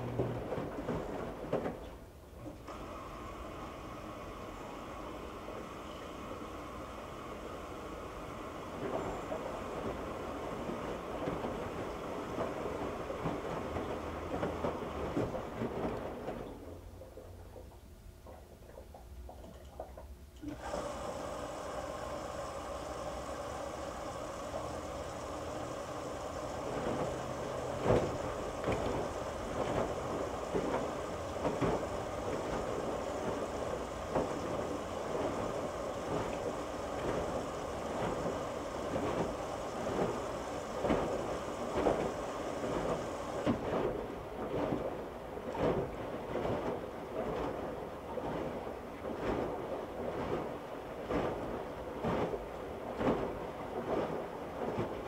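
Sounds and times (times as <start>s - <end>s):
washing machine drum whine: 0.0s - 55.0s.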